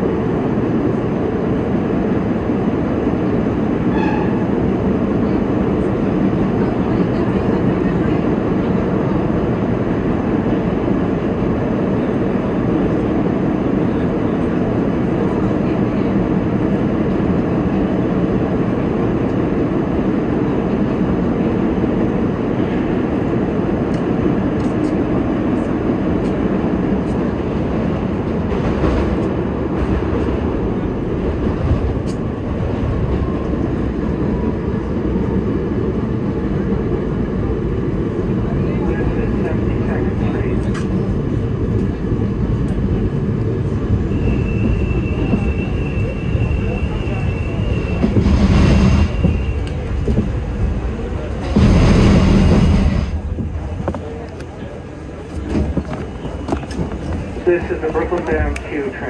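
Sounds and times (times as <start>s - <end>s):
subway wheels rumbling on rail: 0.0s - 59.0s
train clicks: 31.5s - 32.5s, 40.5s - 42.0s, 46.6s - 58.9s
high squeal: 44.1s - 48.2s.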